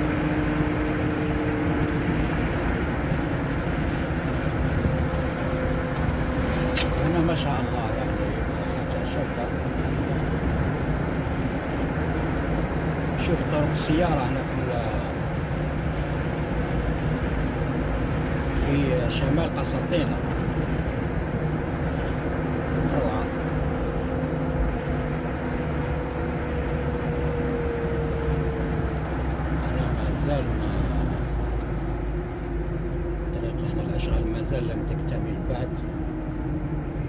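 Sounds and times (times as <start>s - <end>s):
car road and engine noise: 0.0s - 37.0s.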